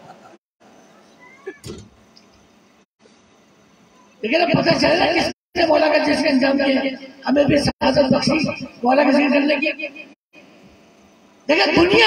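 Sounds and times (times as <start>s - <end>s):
cat meowing faintly: 1.0s - 1.6s.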